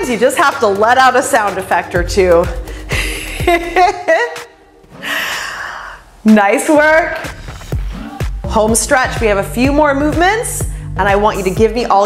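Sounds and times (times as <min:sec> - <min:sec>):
woman laughing: 0:02.9 - 0:04.5
breathy exhale: 0:04.9 - 0:06.2.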